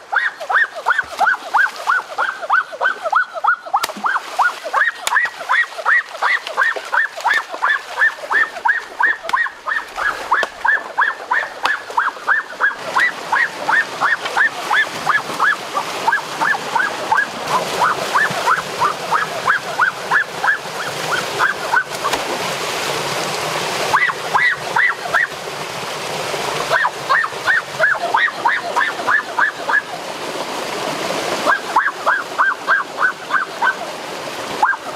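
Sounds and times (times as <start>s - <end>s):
rushing stream water: 0.0s - 34.9s.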